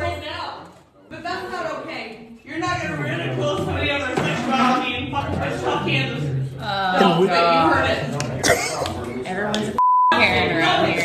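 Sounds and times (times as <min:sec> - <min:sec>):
people talking heatedly: 0:00.0 - 0:11.0
censor bleep: 0:09.8 - 0:10.2.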